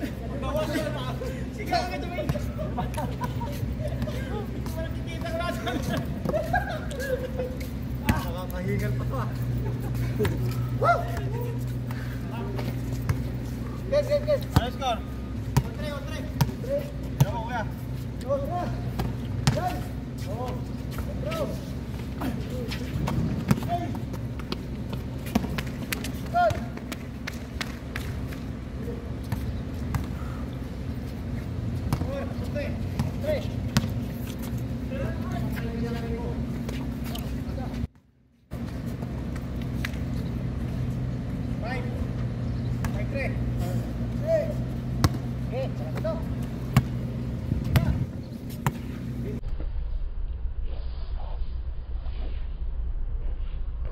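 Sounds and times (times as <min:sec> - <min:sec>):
players calling out: 0:00.0 - 0:37.9
low hum: 0:00.0 - 0:53.9
basketball bouncing on court: 0:13.0 - 0:13.4, 0:14.2 - 0:17.5, 0:18.8 - 0:21.1, 0:23.0 - 0:28.4, 0:29.2 - 0:30.2, 0:31.7 - 0:34.1, 0:42.8 - 0:43.2, 0:44.9 - 0:49.0.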